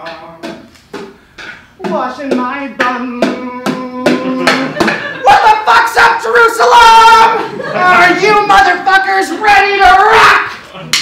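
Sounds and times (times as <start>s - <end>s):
drum strikes: 0.0s - 5.1s.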